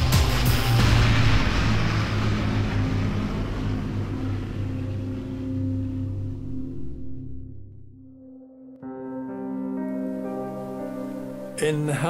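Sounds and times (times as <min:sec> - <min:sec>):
wide rushing rumble: 0:00.0 - 0:07.9
low droning chord: 0:00.0 - 0:12.0.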